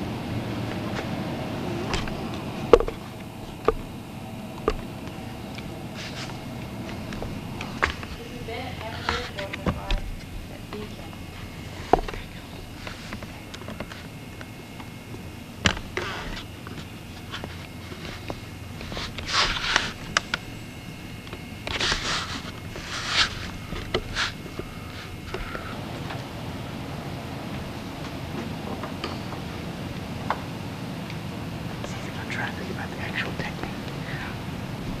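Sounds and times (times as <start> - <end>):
faint indistinct voices: 4.6 - 14.2
rustling hisses: 5.8 - 9.6, 21.7 - 25.9.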